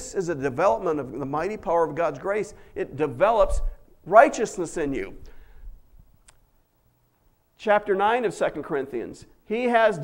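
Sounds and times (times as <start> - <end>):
man speaking: 0.0 - 5.3, 7.6 - 10.0.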